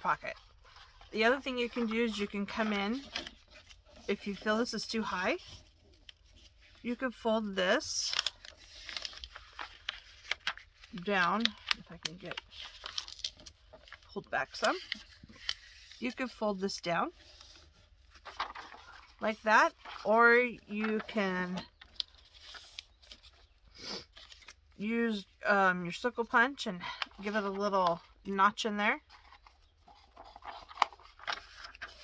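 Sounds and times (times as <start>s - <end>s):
paper rustling: 0.0s - 7.2s, 8.0s - 24.8s, 26.1s - 32.0s
paper folding ticks: 8.1s - 16.2s, 17.2s - 23.5s, 29.0s - 32.0s.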